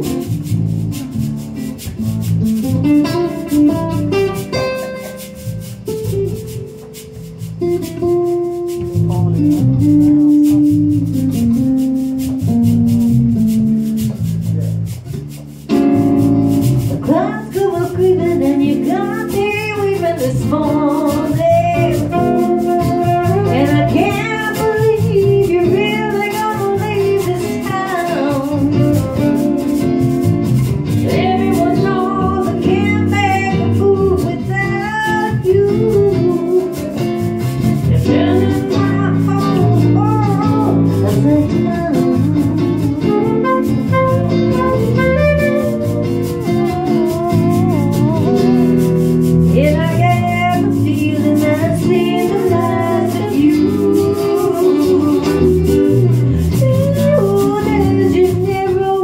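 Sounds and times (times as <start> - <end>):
electric and acoustic guitars: 0.0 - 59.0
women singing: 17.0 - 28.8, 31.0 - 37.0, 37.9 - 43.2, 49.6 - 59.0
saxophone: 21.4 - 24.8, 27.8 - 30.0, 35.5 - 50.8, 52.1 - 58.8.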